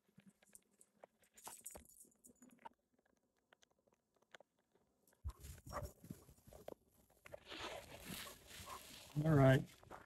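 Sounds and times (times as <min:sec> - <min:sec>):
faint clicks and crackles: 0:00.0 - 0:10.0.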